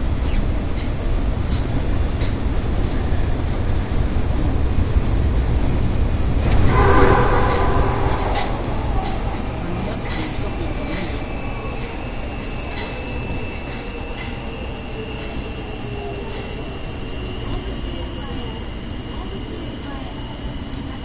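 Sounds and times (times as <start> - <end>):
subway train rumbling in tunnel: 0.0 - 21.0
high whine: 5.9 - 20.2.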